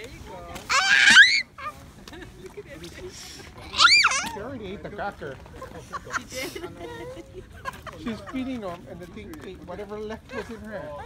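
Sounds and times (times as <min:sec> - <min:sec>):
girl shrieking: 0:00.7 - 0:01.7, 0:03.7 - 0:04.4.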